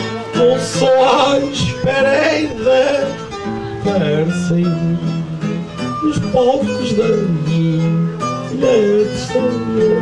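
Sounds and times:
plucked acoustic guitars: 0:00.0 - 0:10.0.

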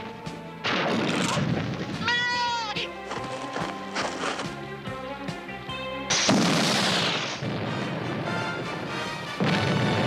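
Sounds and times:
orchestral music: 0:00.0 - 0:01.0, 0:02.0 - 0:10.0
cartoon explosion: 0:06.1 - 0:08.4.

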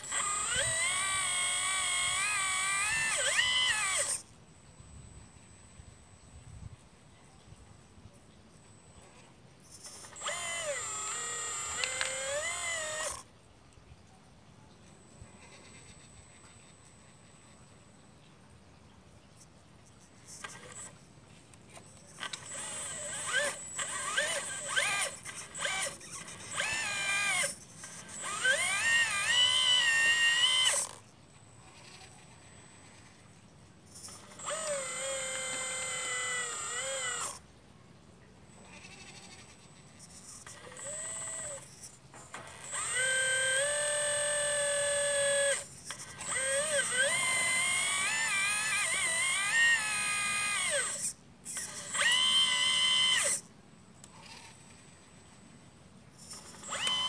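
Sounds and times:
toy excavator motors whining: 0:00.0 - 0:06.4, 0:08.6 - 0:13.4, 0:14.7 - 0:18.2, 0:19.3 - 0:37.5, 0:38.5 - 0:55.5, 0:56.1 - 0:57.0.

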